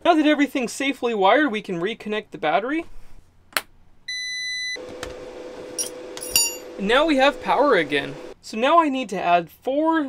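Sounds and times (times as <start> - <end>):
inverter beep: 4.1 - 4.8
inverter humming: 4.8 - 8.4.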